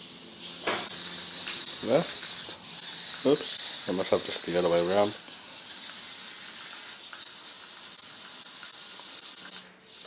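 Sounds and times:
small electric motors whining: 0.0s - 10.0s.

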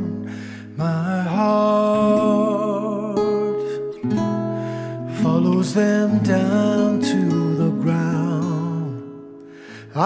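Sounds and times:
person singing: 0.0s - 4.0s, 4.8s - 10.0s
strummed acoustic guitar: 0.0s - 10.0s.

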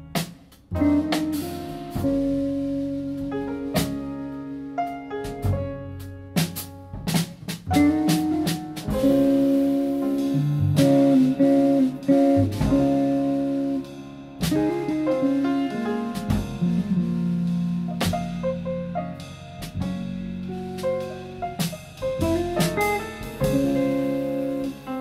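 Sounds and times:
plucked upright bass: 0.0s - 4.4s, 5.3s - 25.0s
drum kit and cymbal hits: 0.0s - 25.0s
piano: 0.0s - 25.0s
electric guitar melody: 0.7s - 5.7s, 7.7s - 25.0s.

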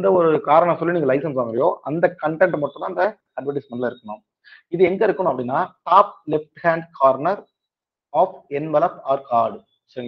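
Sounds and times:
man lecturing: 0.0s - 7.5s, 8.2s - 10.0s.

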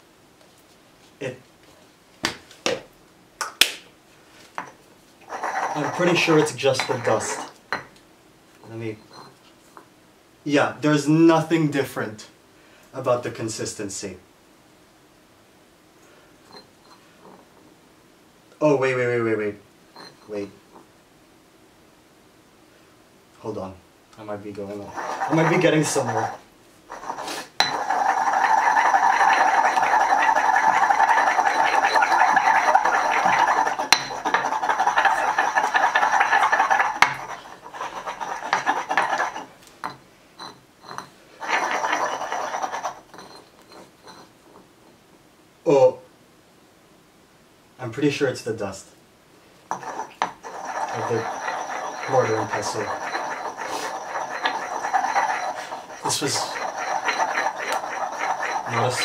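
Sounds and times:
stone pestle grinding in mortar: 4.6s - 7.8s, 24.7s - 44.3s, 49.7s - 59.0s.

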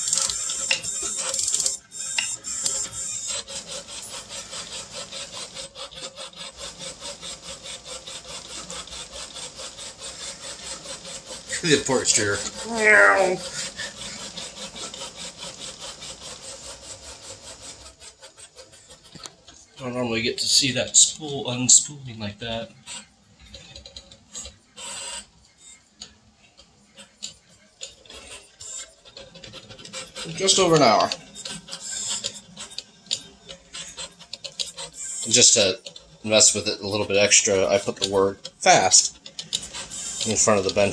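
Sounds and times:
three d printer motors rasping: 0.0s - 40.9s.

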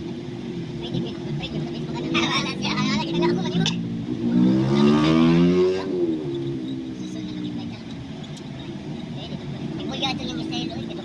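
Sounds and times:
vehicle engine accelerating: 0.0s - 11.0s.

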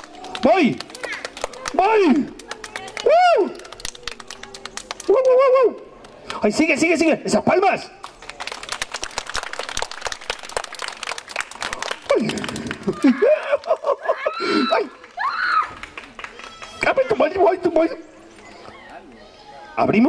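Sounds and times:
audience clapping: 0.0s - 6.4s, 8.0s - 17.1s.

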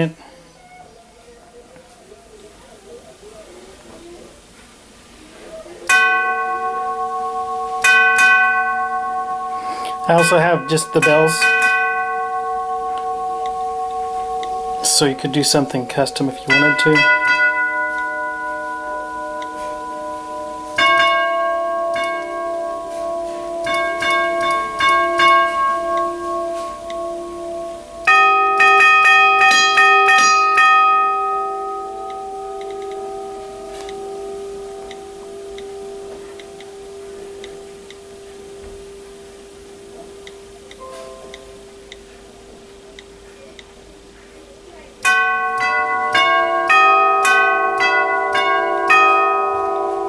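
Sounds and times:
tubular doorbell chime: 5.8s - 42.6s, 45.0s - 50.0s.

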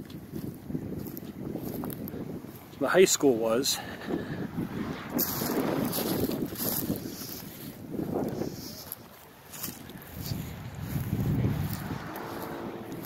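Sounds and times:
footsteps through dry grass: 0.0s - 13.0s
wind buffeting microphone: 0.0s - 13.0s.

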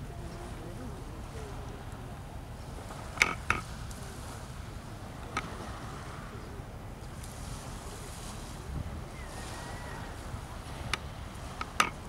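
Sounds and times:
low shore rumble: 0.0s - 12.0s
small waves washing: 0.0s - 12.0s
wind buffeting microphone: 0.0s - 12.0s.

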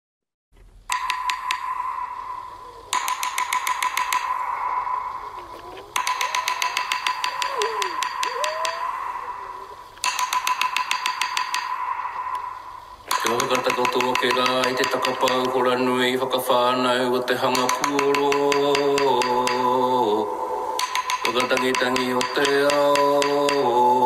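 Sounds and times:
sliding whistle-like tones: 0.9s - 15.4s
bursts of rapid clicking: 0.9s - 15.9s, 20.8s - 23.7s
steady high tone: 0.9s - 24.0s.

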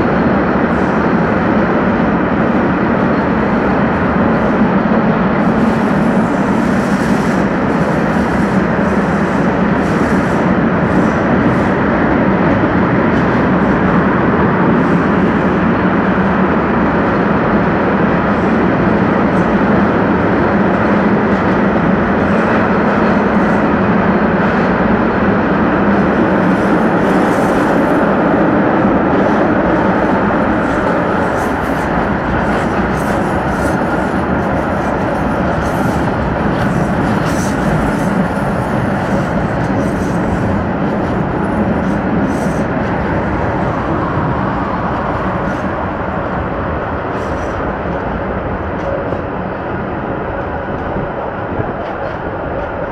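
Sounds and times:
tram running noise: 0.0s - 52.9s.

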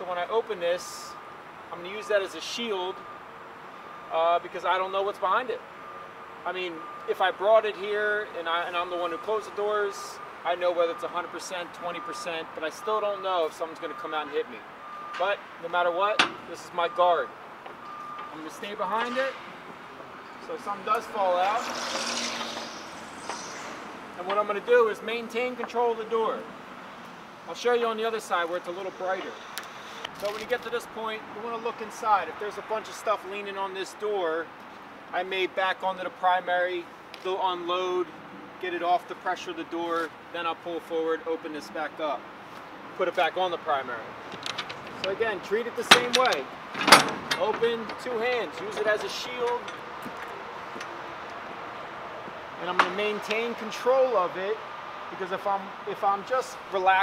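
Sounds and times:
steady background noise: 0.0s - 57.0s
high hiss: 21.6s - 24.0s.

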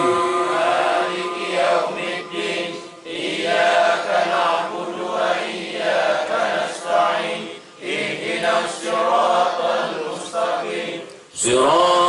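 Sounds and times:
men chanting over loudspeaker: 0.0s - 12.0s.

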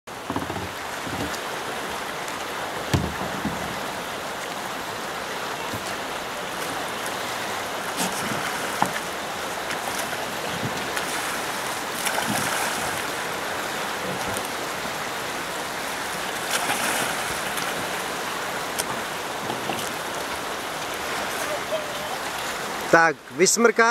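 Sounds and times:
canoe splashing and knocking: 0.1s - 22.9s
flowing river water: 0.1s - 23.9s.

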